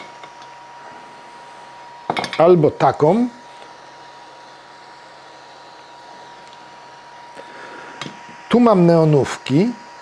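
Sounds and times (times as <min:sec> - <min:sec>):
thin constant whine: 0:00.0 - 0:10.0.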